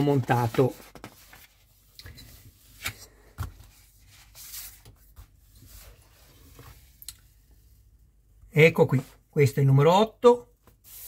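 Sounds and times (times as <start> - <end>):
paper rustling and sliding: 0.0 - 7.0, 10.7 - 11.0.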